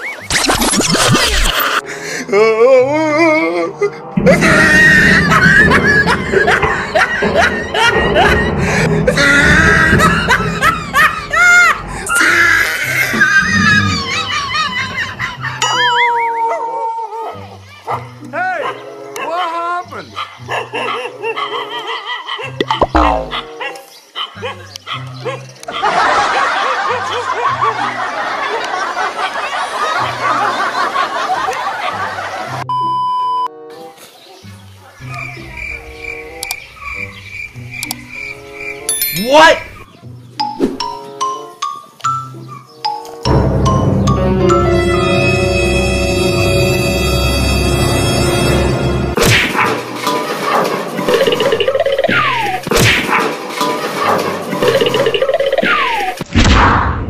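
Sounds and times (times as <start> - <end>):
bouncy comedic music: 2.4 - 16.8, 17.7 - 23.7, 37.6 - 56.2
dog barking: 17.2 - 19.5, 20.1 - 22.8, 23.4 - 25.8.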